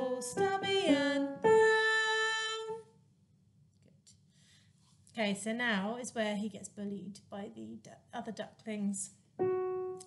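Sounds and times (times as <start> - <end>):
woman singing: 0.0 - 2.9.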